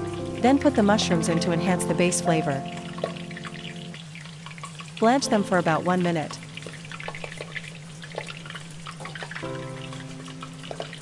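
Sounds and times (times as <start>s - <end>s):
soft background music: 0.0s - 11.0s
water boiling in a pot: 0.0s - 11.0s.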